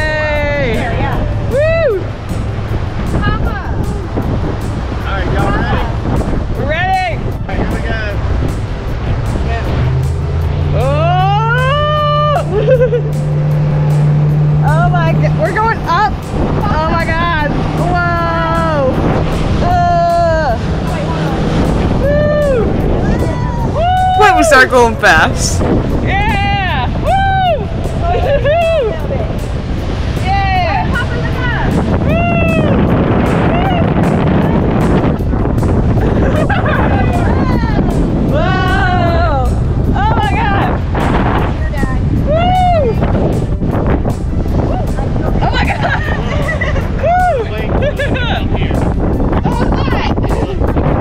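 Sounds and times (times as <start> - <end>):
outboard motor drone: 0.0 - 51.0
water and wind noise: 0.0 - 51.0
voices calling out: 10.7 - 34.3.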